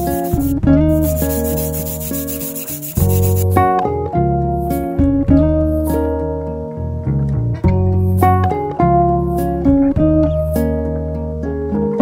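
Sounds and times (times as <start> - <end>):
abrasive rubbing steel sheet: 0.0 - 3.6
guitar and bass music: 0.0 - 12.0.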